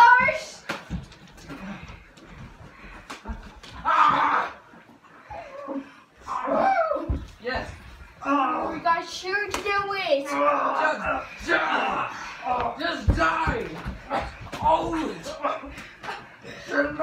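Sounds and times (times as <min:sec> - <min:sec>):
people exclaiming and calling out: 0:05.6 - 0:07.4.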